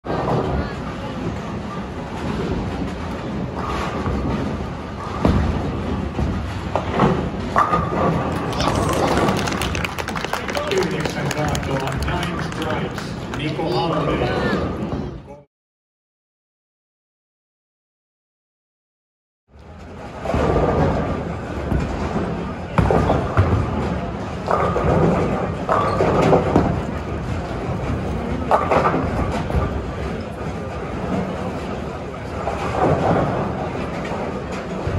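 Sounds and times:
crowd chatter: 0.1 - 3.7, 8.1 - 15.5, 19.8 - 25.8
bowling balls rolling: 0.1 - 15.2, 19.7 - 34.9
balls and pins clattering: 3.8 - 14.1
people talking: 8.5 - 15.5.

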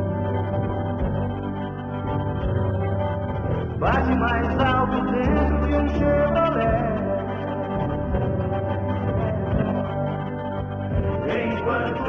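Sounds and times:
song with guitar: 0.0 - 12.0
person singing: 3.6 - 12.0.

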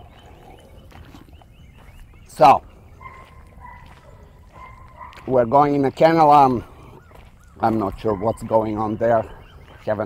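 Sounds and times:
footsteps crunching on gravel: 0.0 - 10.0
outdoor background noise: 0.0 - 10.0.

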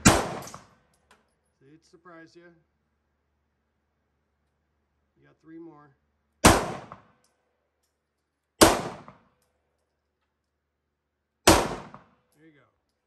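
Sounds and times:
pistol shots: 0.0 - 0.8, 6.4 - 7.2, 8.6 - 9.3, 11.4 - 12.2.

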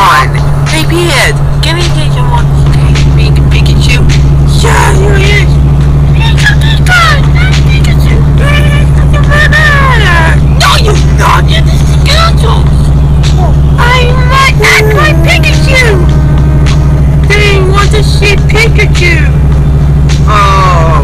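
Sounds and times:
loud low drone: 0.0 - 21.0
high-pitched voices chattering: 6.1 - 16.2.

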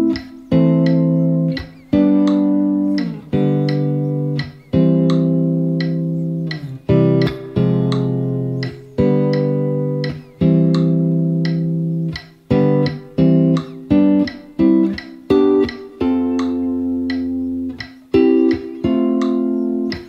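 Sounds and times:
clean electric guitar chords: 0.0 - 20.0.

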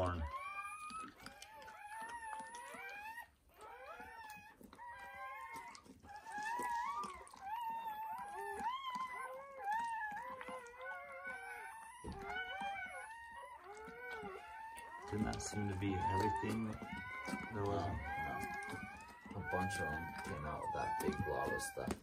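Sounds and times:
dog whining: 0.0 - 22.0.

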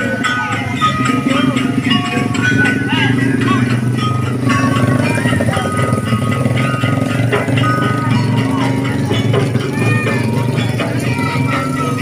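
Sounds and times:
crowd voices: 0.0 - 12.0
motorbike engines: 0.0 - 12.0
parade music: 0.0 - 12.0.

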